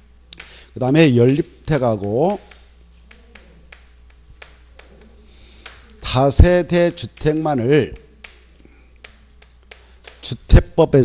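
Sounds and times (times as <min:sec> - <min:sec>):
chalk tapping on chalkboard: 0:00.4 - 0:10.5.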